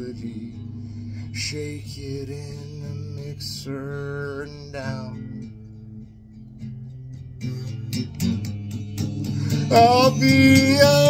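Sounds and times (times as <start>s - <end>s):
electric guitar playing: 0.0s - 11.0s.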